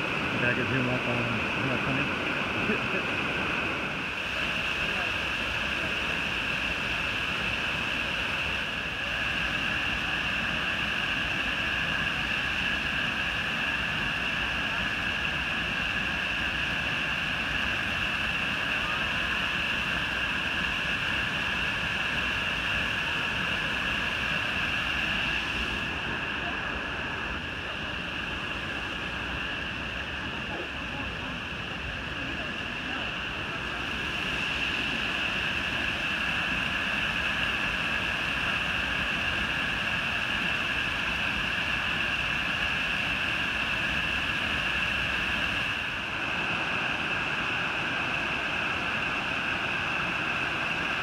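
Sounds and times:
waterfall rushing: 0.0 - 51.0.

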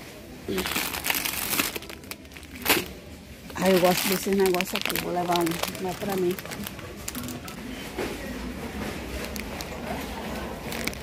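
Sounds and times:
indistinct shopper voices: 0.1 - 11.0.

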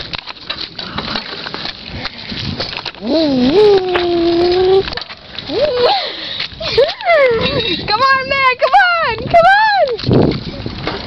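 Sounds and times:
child's drawn-out cries: 3.0 - 4.9.

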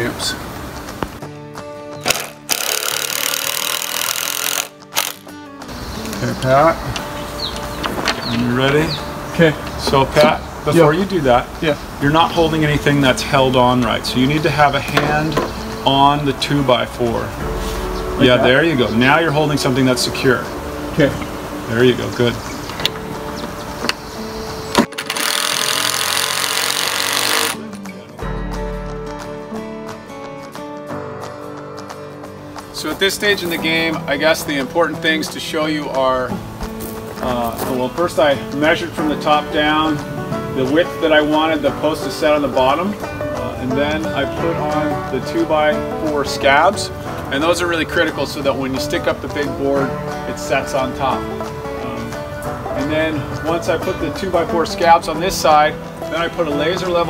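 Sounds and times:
acoustic guitar music: 0.0 - 57.0
power drill running: 2.1 - 5.2, 25.0 - 27.6.

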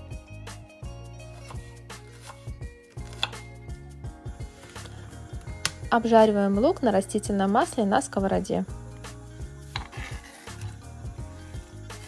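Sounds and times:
background music: 0.0 - 12.0
knife striking cutting board: 3.0 - 3.4, 9.7 - 10.8.

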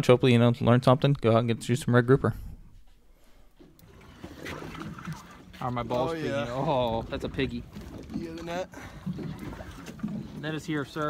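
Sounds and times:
water washing: 3.7 - 11.0.

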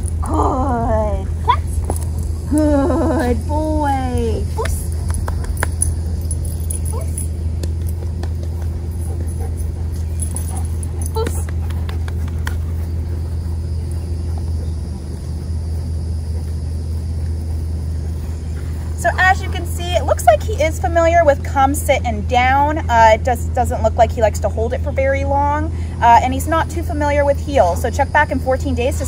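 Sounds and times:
dog leash jingling: 0.0 - 0.3, 3.2 - 12.5
steady low rumble: 0.0 - 29.0.

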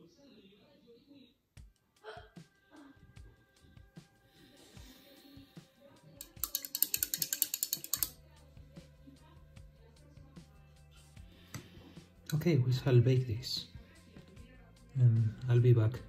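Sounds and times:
brush rattling in metal cup: 6.2 - 8.2
faint scattered clicks: 6.2 - 8.2.

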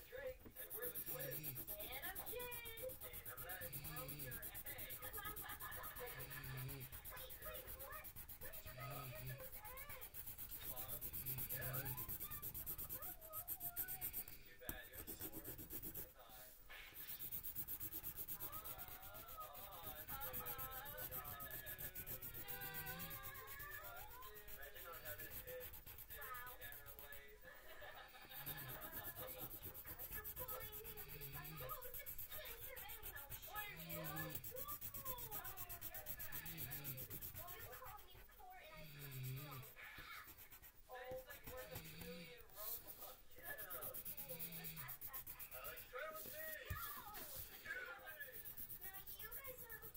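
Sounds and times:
faint background voices: 0.0 - 49.9.

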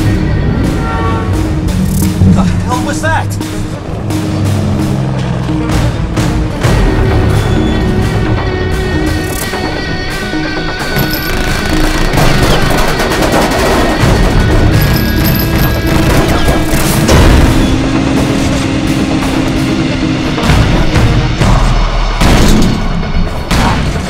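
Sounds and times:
action film music: 0.0 - 24.0.

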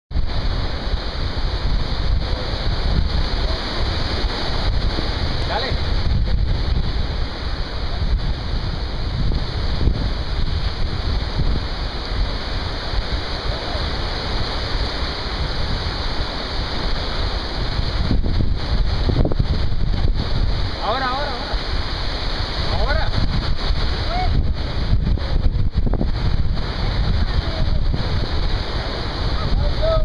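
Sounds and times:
small waves washing on sand: 0.1 - 30.0
wind buffeting microphone: 0.1 - 30.0.

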